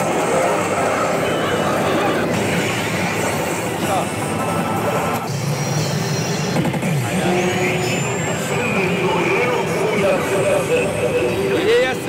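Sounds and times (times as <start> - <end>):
slot machines music and effects: 0.0 - 9.4.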